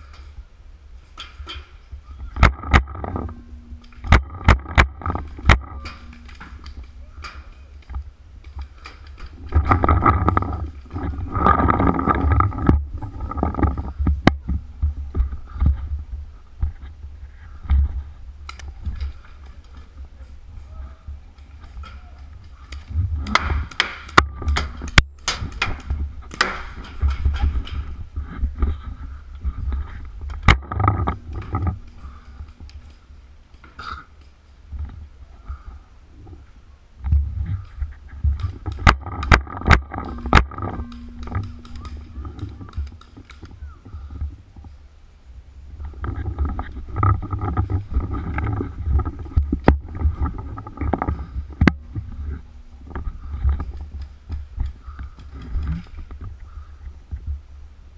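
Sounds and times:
sharp crack: 1.2 - 14.5, 21.8 - 27.9
low rumble: 1.8 - 57.9
paintball gun cracks: 22.7 - 27.1.

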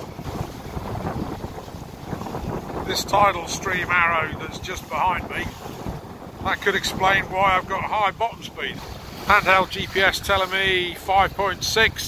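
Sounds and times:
water rushing along hull: 0.0 - 12.0
wind buffeting microphone: 0.0 - 12.0.

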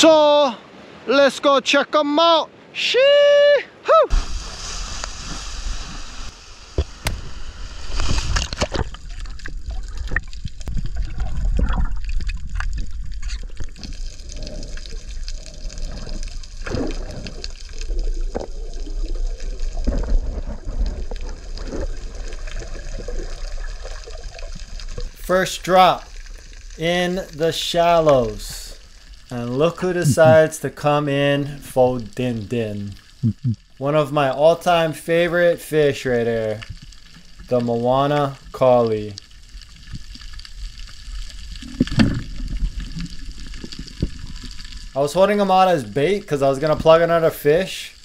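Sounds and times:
water sloshing underwater: 4.1 - 25.3, 36.6 - 45.0.

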